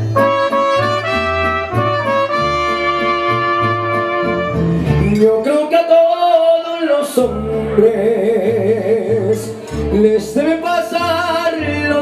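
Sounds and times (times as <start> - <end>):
trumpets holding long notes: 0.0 - 4.8
bass line: 0.0 - 5.5
mariachi band playing: 0.0 - 12.0.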